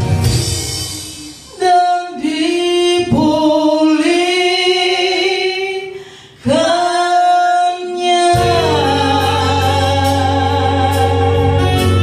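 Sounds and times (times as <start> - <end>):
woman singing into microphone: 1.1 - 12.0.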